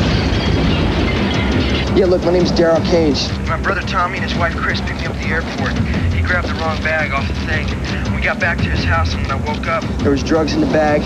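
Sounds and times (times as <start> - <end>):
loud steady rumbling: 0.0 - 11.0.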